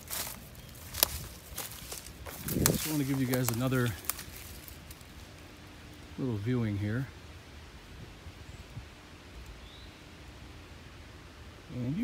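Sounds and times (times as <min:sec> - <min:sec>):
faint steady hum: 0:00.0 - 0:12.0
quiet woodland ambience: 0:00.0 - 0:12.0.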